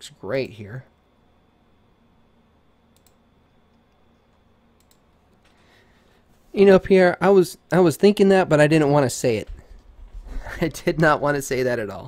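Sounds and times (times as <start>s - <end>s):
faint clicks: 2.9s - 5.6s.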